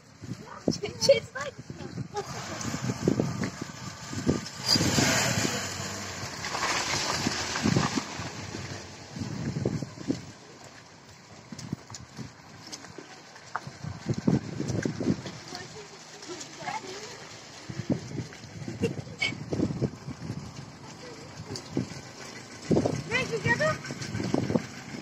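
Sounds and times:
wind buffeting microphone: 0:00.0 - 0:10.5, 0:11.2 - 0:25.0
low rumbles and thumps: 0:00.0 - 0:25.0.

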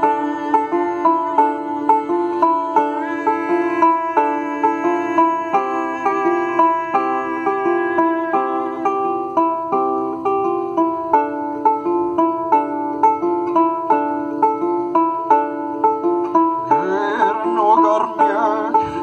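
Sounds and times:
lyre plucked: 0:00.0 - 0:19.0
man singing: 0:00.1 - 0:09.0, 0:16.6 - 0:19.0.

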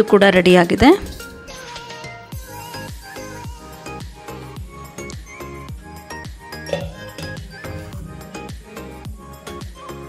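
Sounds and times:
music with steady beat: 0:02.4 - 0:10.0
metal jar clinking on steel bowl: 0:06.7 - 0:08.3.

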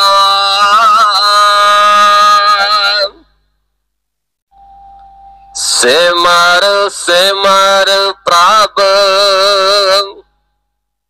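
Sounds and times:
faint steady tone: 0:03.2 - 0:05.9, 0:10.2 - 0:11.0.

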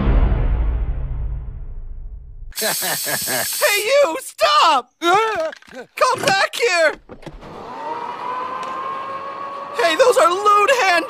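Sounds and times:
small motor whining: 0:07.2 - 0:10.6.

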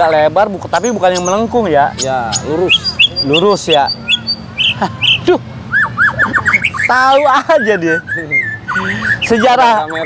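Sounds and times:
songbird singing: 0:00.0 - 0:10.0.

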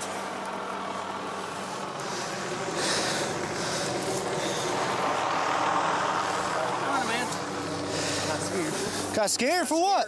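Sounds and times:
helicopter engine and rotor drone: 0:00.0 - 0:10.0
voices: 0:01.3 - 0:10.0.

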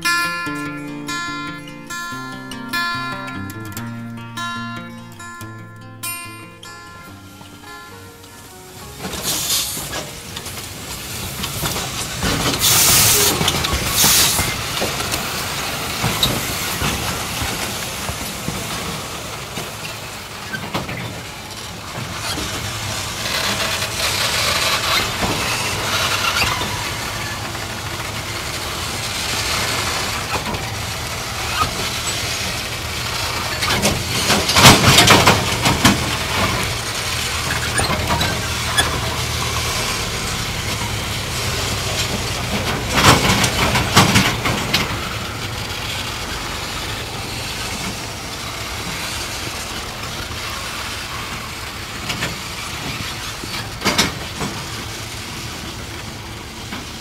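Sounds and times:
train wagons rumbling: 0:07.5 - 0:57.0
metallic wheel screeching and clanking: 0:09.0 - 0:18.2, 0:22.0 - 0:46.0.

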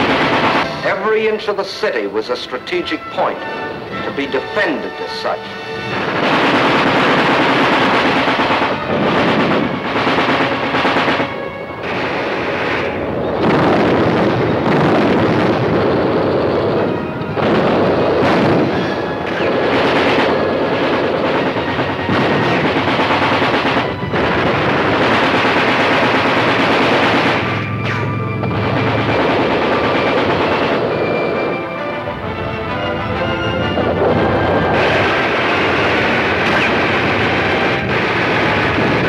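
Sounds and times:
machine-gun fire: 0:00.0 - 0:00.9, 0:05.9 - 0:16.1, 0:17.4 - 0:31.5, 0:34.7 - 0:39.0
music: 0:00.0 - 0:39.0.

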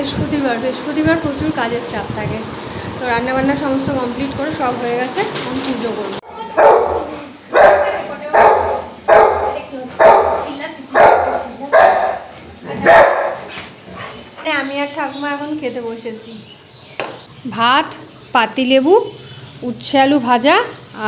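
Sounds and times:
dog barking: 0:06.5 - 0:13.6.

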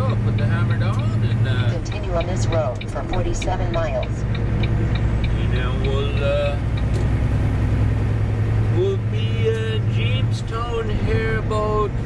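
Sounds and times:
road and tyre noise: 0:00.0 - 0:12.0
truck engine drone: 0:00.0 - 0:12.0.

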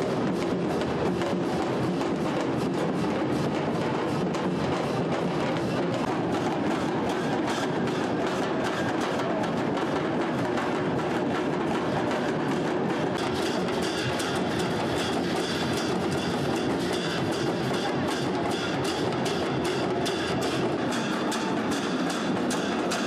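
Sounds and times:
large drums beaten fast: 0:00.0 - 0:23.0.

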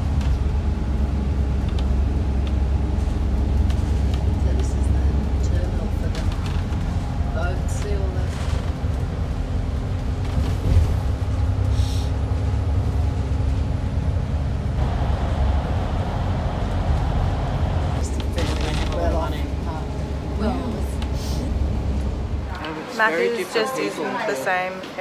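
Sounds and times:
bus engine and road rumble: 0:00.0 - 0:25.0
indistinct voices: 0:14.8 - 0:25.0.

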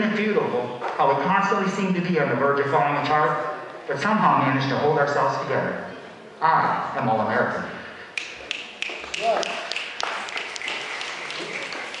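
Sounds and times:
audience applauding: 0:08.5 - 0:12.0.

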